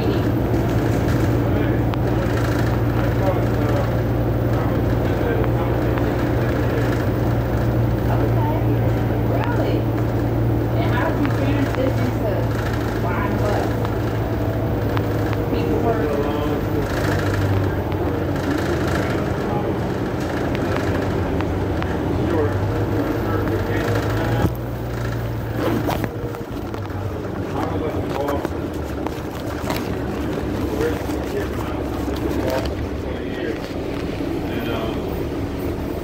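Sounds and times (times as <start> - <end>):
bus engine drone: 0.0 - 36.0
indistinct voices: 0.0 - 36.0.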